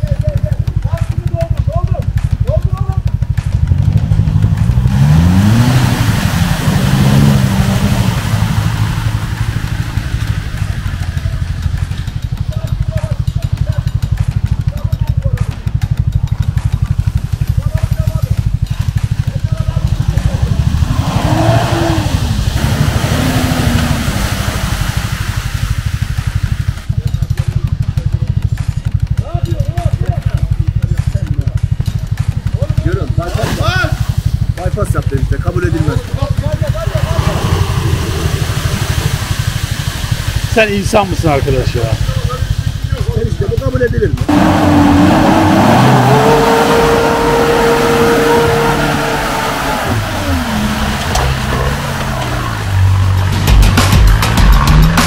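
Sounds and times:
off-road engines revving: 0.0 - 55.0.

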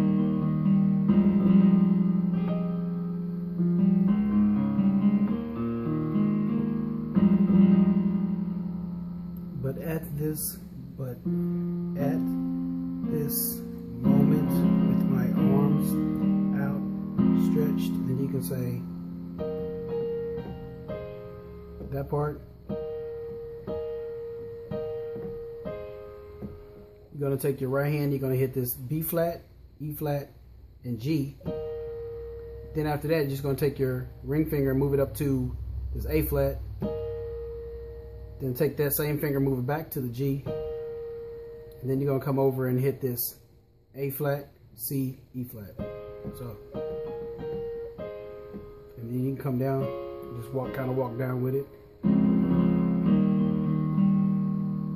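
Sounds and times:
digital piano chord and notes: 0.0 - 43.2, 45.4 - 54.9.

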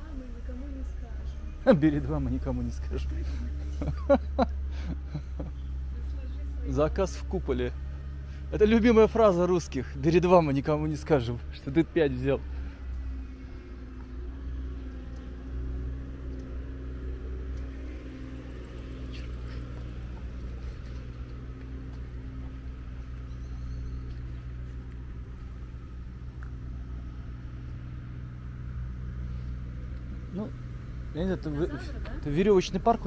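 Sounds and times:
low mechanical hum: 0.0 - 33.0.

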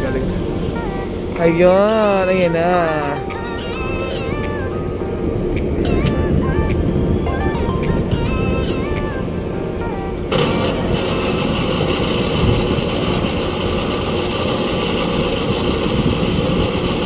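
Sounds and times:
background music: 0.0 - 12.8
loud engine rumble: 0.0 - 17.0.

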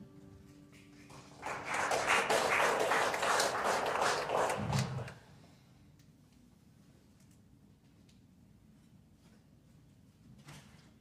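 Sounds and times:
crowd applauding: 0.7 - 5.2.

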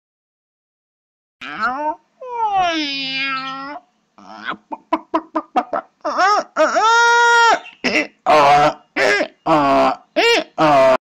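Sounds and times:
cartoon animal calls: 1.4 - 8.8.

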